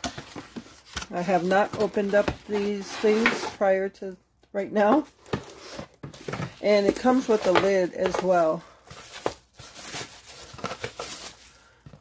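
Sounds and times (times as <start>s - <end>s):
plastic bag crinkling: 6.7s - 11.8s.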